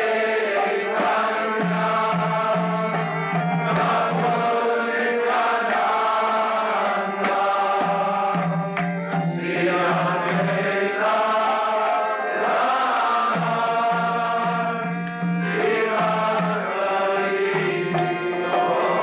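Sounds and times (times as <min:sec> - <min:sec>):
group chanting: 0:00.0 - 0:19.0.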